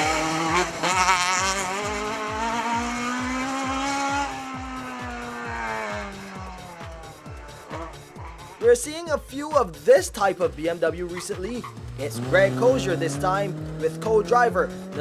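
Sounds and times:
rally car engine passing: 0.0s - 9.2s, 10.7s - 15.0s
steady music beat: 0.0s - 15.0s.

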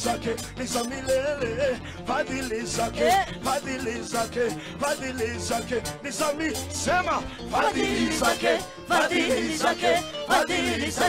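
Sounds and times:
gospel band backing: 0.0s - 11.0s
choir singing: 7.5s - 11.0s.

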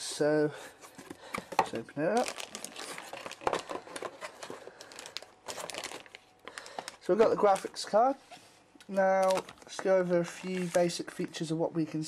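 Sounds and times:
plastic bag crinkling: 1.7s - 8.2s, 8.9s - 11.2s.

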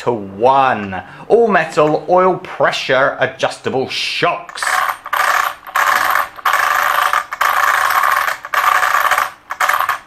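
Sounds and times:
metallic rattling of toy car: 4.5s - 10.0s.

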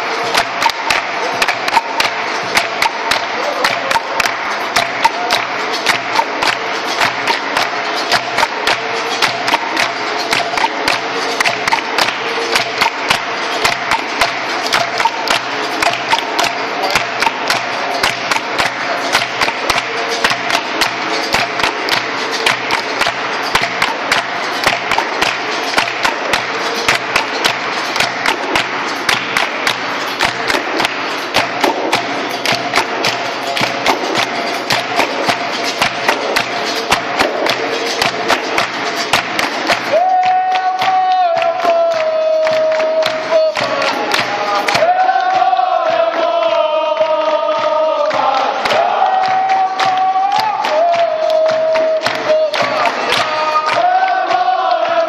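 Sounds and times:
hand drum: 0.0s - 46.1s, 47.0s - 55.0s
hand clapping: 0.0s - 55.0s.

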